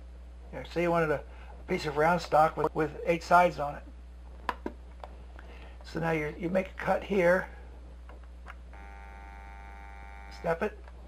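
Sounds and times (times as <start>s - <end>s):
stepper motor whining: 8.8s - 10.5s.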